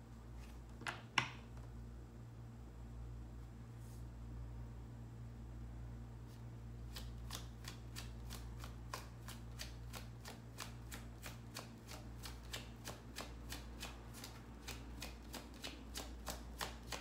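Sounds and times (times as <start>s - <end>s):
cards being shuffled by hand: 6.3s - 17.0s.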